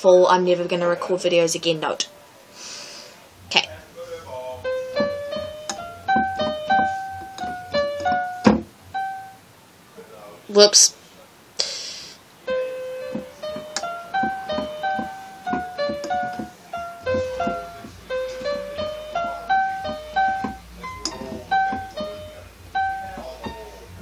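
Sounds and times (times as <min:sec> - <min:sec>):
electronic keyboard piano melody: 0:03.7 - 0:09.5, 0:12.4 - 0:24.0.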